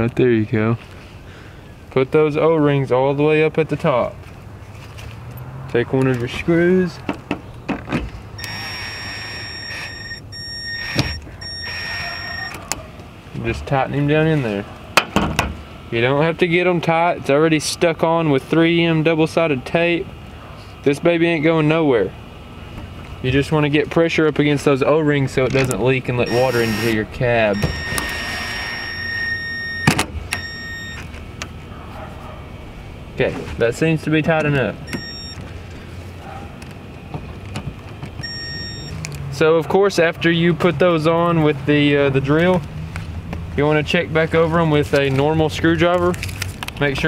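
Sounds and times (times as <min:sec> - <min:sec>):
power drill driving screws: 0:08.4 - 0:12.6, 0:26.3 - 0:27.0, 0:27.6 - 0:31.0.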